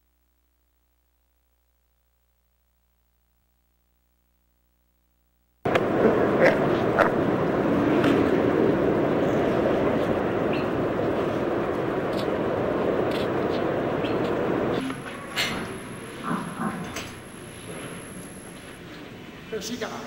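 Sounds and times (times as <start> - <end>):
traffic rushing: 5.7 - 18.9.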